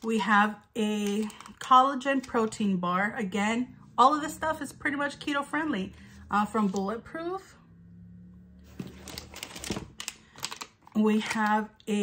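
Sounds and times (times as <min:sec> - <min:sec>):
plastic wrappers crinkling: 0:00.8 - 0:02.4, 0:08.8 - 0:11.6.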